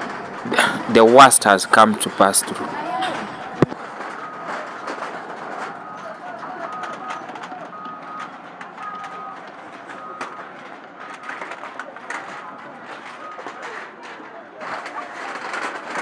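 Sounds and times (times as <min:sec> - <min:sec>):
background voices: 0:00.4 - 0:08.1
reversing alarm beeping: 0:03.3 - 0:11.7, 0:13.2 - 0:13.6.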